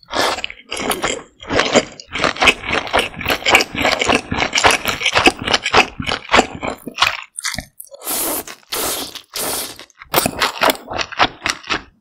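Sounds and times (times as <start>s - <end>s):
noodles being slurped: 0.0s - 12.0s.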